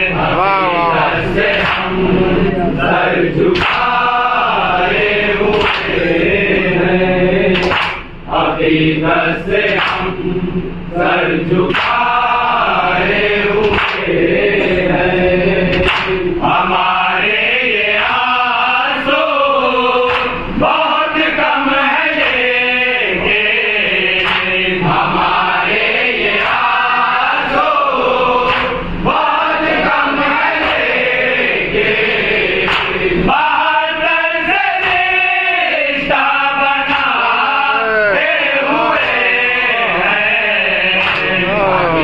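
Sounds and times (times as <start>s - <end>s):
men chanting: 0.0s - 42.0s
man singing into a microphone: 36.2s - 42.0s.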